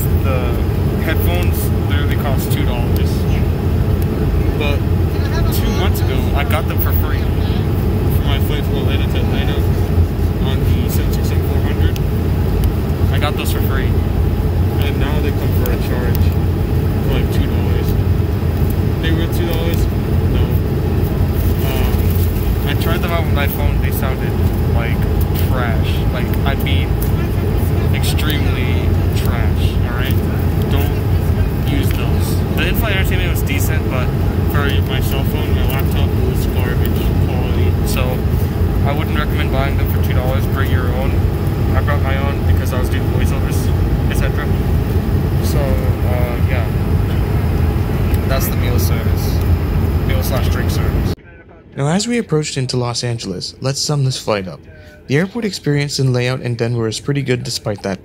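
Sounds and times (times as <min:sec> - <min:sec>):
airflow around fuselage: 0:00.0 - 0:51.2
airplane engine rumble: 0:00.0 - 0:51.8
murmur of voices: 0:04.2 - 0:11.8.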